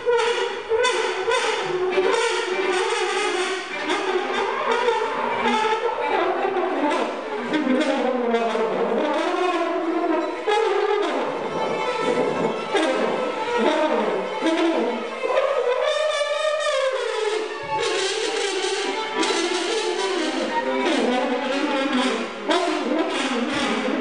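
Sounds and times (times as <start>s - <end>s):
trombone playing: 0.0s - 24.0s
viola playing: 0.0s - 24.0s.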